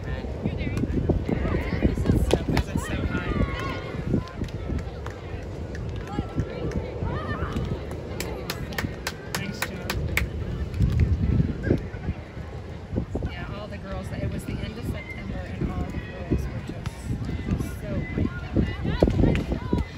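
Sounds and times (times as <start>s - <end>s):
wind on microphone: 0.0s - 19.9s.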